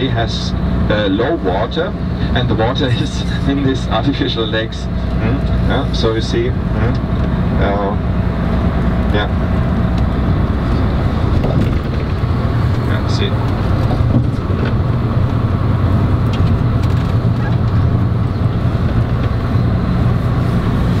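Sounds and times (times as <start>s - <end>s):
vehicle road noise inside cabin: 0.0s - 21.0s.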